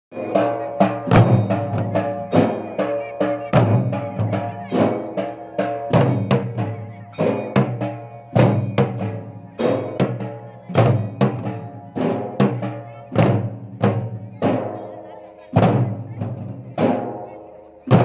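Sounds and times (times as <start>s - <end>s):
dhol drums beating: 0.1s - 18.0s.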